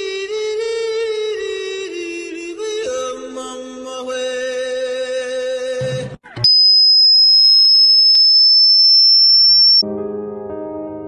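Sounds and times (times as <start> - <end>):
high-pitched electronic tone: 6.5 - 9.8.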